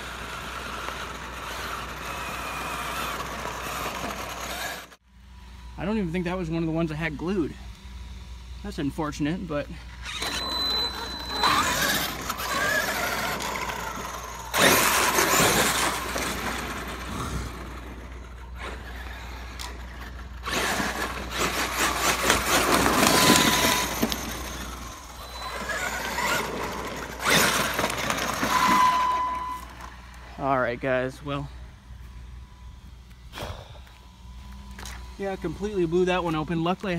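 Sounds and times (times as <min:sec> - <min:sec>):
tyres rushing over asphalt: 0:00.0 - 0:05.0, 0:10.0 - 0:31.5
electric motor whining: 0:00.0 - 0:30.6, 0:31.3 - 0:36.9.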